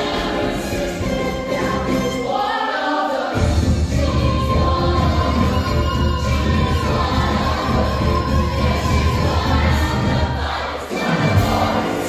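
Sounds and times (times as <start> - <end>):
band playing show tune: 0.0 - 2.5, 3.3 - 12.0.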